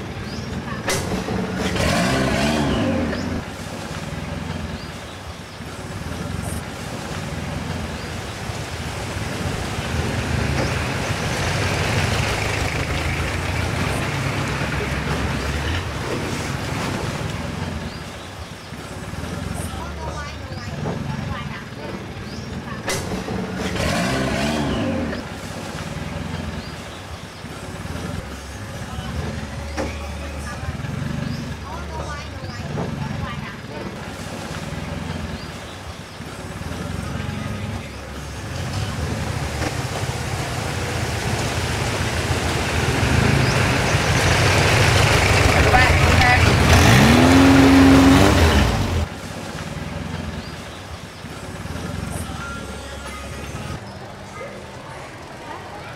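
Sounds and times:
boat engine running: 0.0 - 55.9
indistinct voices: 0.0 - 55.9.

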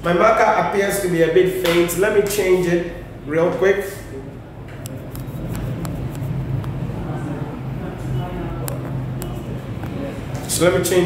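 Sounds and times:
steady low hum: 2.0 - 11.0.

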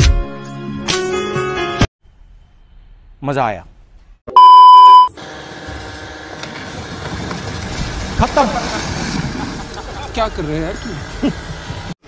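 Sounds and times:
test card beep: 4.3 - 5.1.

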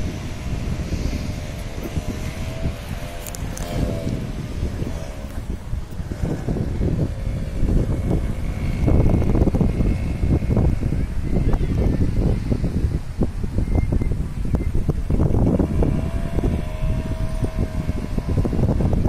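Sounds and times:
faint wavering hum: 0.0 - 19.0
wind buffeting microphone: 0.0 - 19.0.

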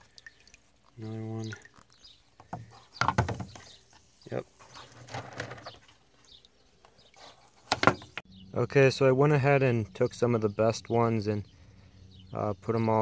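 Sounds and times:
water sloshing: 0.0 - 8.2
stones knocking in water jug: 1.4 - 3.8, 7.6 - 8.2.

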